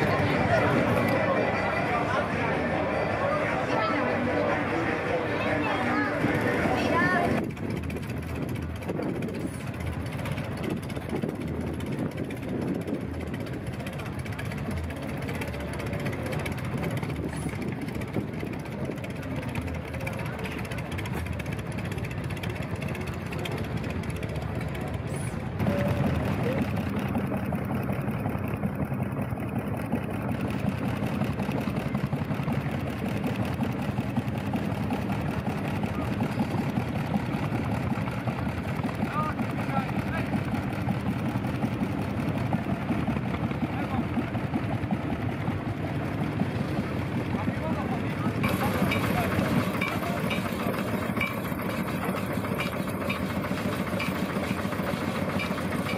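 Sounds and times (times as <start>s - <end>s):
crowd chatter: 0.0s - 55.9s
engines running: 0.0s - 55.9s.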